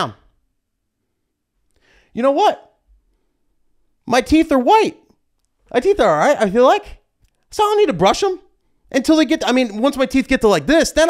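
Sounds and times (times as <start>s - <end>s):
man speaking: 0.0s - 0.3s, 2.1s - 2.8s, 4.0s - 5.1s, 5.7s - 11.0s
short in-breath: 1.7s - 2.2s.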